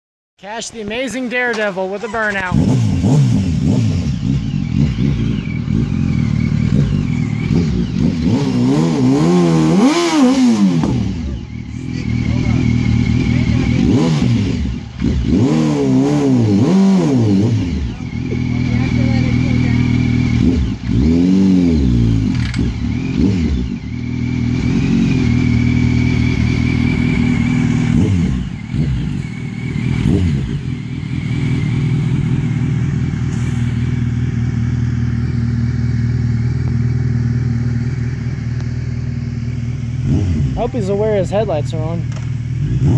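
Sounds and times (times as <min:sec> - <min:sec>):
motorcycle engine revving: 0:01.0 - 0:42.9.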